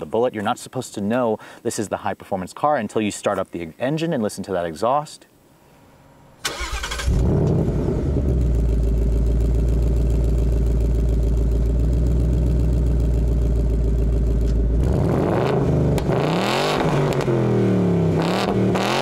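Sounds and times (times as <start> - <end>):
car engine starting and idling: 6.0 - 19.0
engine revving: 6.4 - 19.0.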